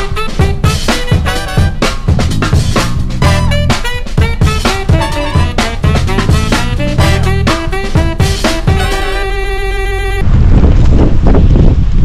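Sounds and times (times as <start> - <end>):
music: 0.0 - 10.2
wind buffeting microphone: 10.2 - 12.0.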